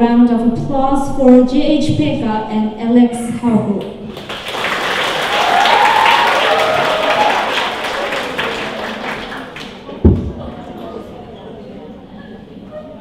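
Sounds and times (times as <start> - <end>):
audience applauding: 4.1 - 10.0.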